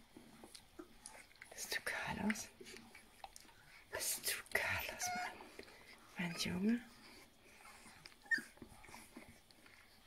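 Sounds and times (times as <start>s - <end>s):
puppy suckling smacks: 0.1s - 3.8s
puppy squeak: 8.2s - 8.6s.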